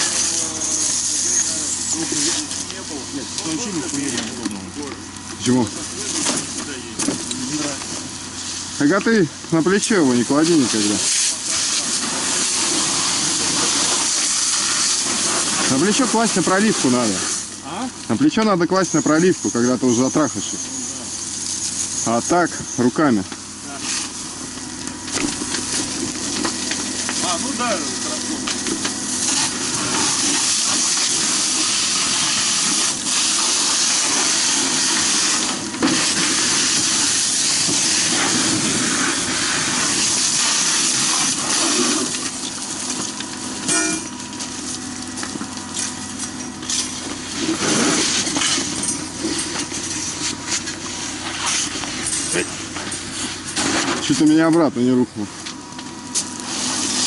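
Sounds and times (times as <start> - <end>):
water jet hissing: 0.0 - 4.2, 9.8 - 17.8, 25.6 - 53.8, 56.1 - 57.0.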